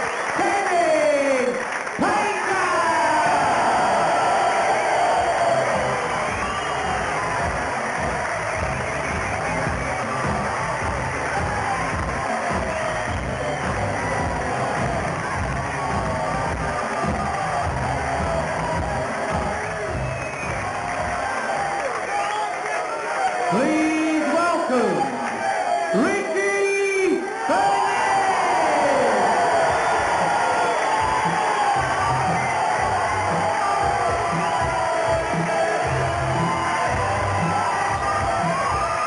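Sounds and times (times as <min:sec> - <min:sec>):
crowd cheering: 0:00.0 - 0:39.0
music with steady beat: 0:05.0 - 0:21.6, 0:29.6 - 0:39.0.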